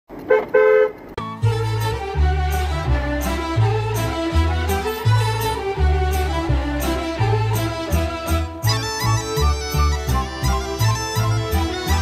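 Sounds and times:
car horn honks: 0.2s - 1.0s
folk music with fiddle: 1.2s - 12.0s.

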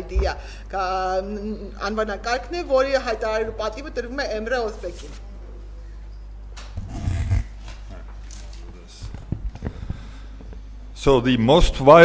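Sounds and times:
low electrical hum: 0.0s - 12.0s
vocal noise close to microphone: 6.8s - 7.7s.

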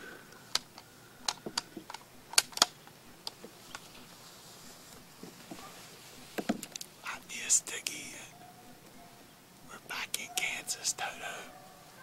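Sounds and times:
phone handling clicks and taps: 0.5s - 3.9s.

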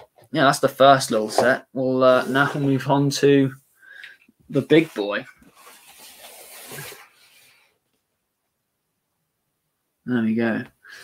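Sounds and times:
cardboard box scraping on desk: 2.1s - 2.9s, 5.5s - 7.6s.

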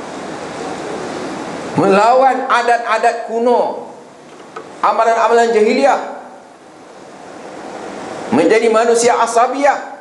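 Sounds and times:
room noise hiss: 0.0s - 10.0s
voice: 1.8s - 3.9s, 4.8s - 6.2s, 8.3s - 10.0s.

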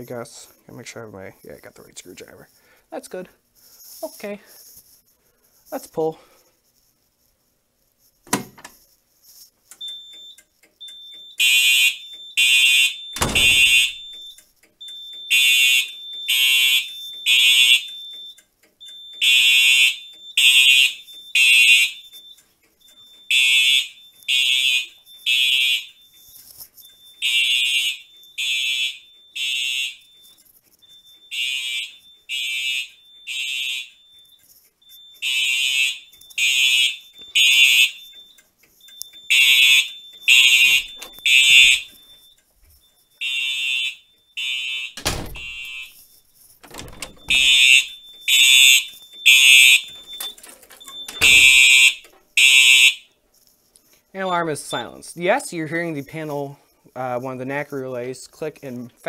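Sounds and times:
fire alarm horns blasting: 9.8s - 53.2s, 54.2s - 55.5s.

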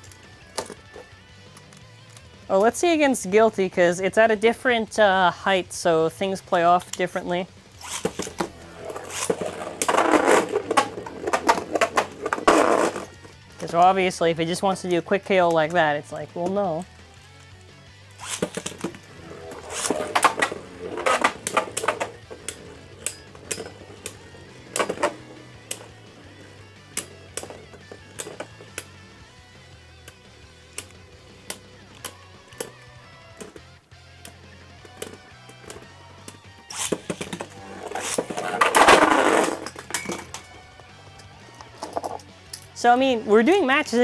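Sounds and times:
background music: 0.0s - 44.0s
spinning tops clashing: 7.8s - 13.2s, 18.2s - 29.0s.

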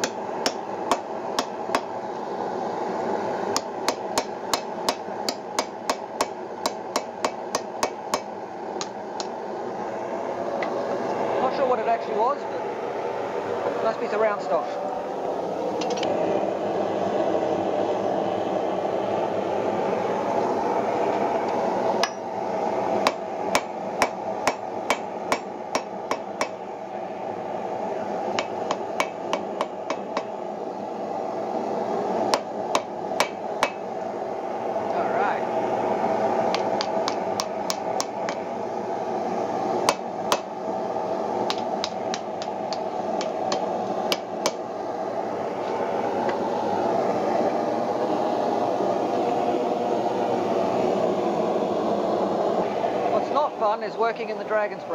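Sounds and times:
hammer striking iron on anvil: 0.0s - 1.9s, 3.6s - 9.3s, 22.0s - 22.3s, 23.0s - 26.6s, 28.4s - 30.3s, 32.3s - 33.8s, 39.9s - 40.5s.

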